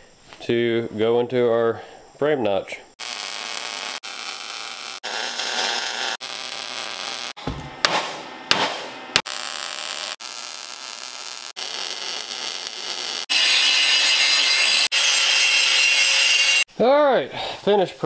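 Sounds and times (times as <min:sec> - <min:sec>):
welding arc crackling and hissing: 0:03.0 - 0:07.4, 0:09.2 - 0:14.9
hammer striking metal: 0:07.4 - 0:09.2.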